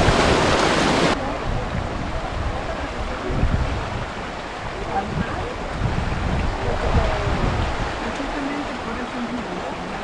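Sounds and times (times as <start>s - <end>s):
water rushing: 0.0s - 10.0s
wind buffeting microphone: 0.0s - 10.0s.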